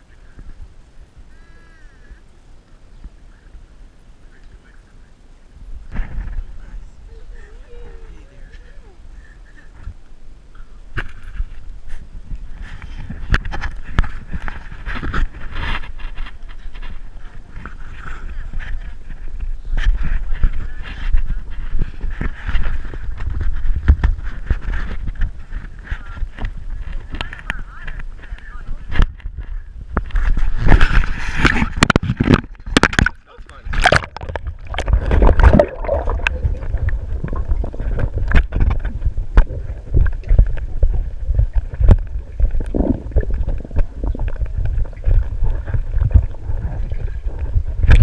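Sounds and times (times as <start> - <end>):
underwater rumble of water: 0.0 - 48.0
otter knocking and scraping camera: 11.0 - 48.0.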